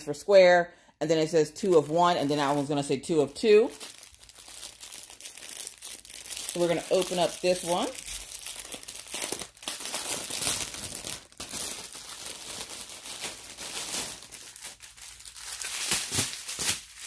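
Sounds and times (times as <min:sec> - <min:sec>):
plastic packaging crinkling: 0:01.6 - 0:17.0.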